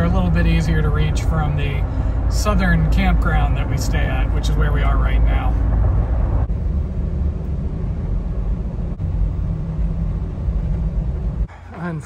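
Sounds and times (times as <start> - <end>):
road and engine noise inside car: 0.0 - 12.0.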